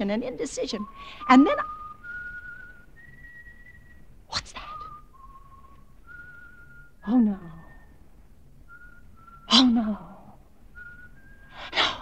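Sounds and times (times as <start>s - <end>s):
faint whistling of a tune: 0.0s - 12.0s.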